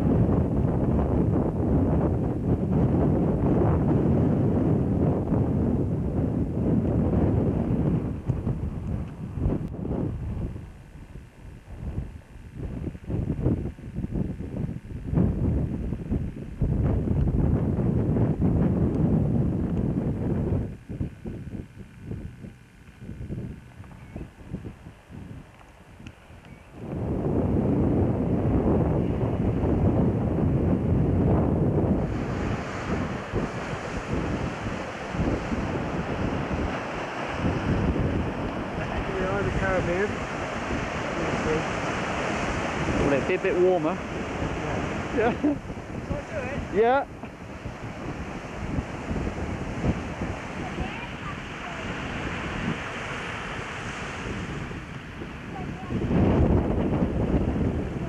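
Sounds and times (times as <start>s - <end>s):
wind buffeting microphone: 0.0s - 58.0s
sea surf hiss: 31.8s - 58.0s.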